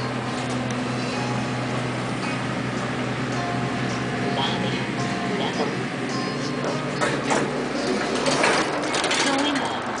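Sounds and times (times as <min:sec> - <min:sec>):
elevator doors sliding open: 0:00.0 - 0:10.0.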